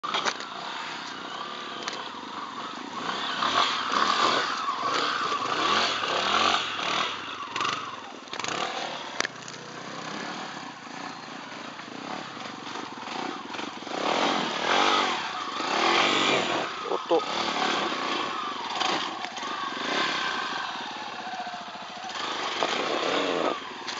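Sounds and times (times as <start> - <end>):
motorcycle engine revving: 0.0 - 23.9.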